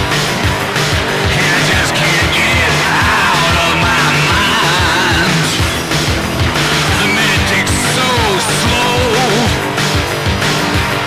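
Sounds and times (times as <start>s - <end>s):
loud rock band music: 0.0s - 11.0s
wailing lead line: 0.0s - 11.0s.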